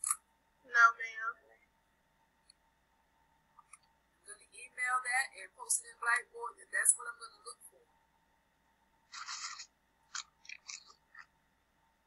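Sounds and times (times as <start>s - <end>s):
crunchy rustle: 9.1s - 11.3s.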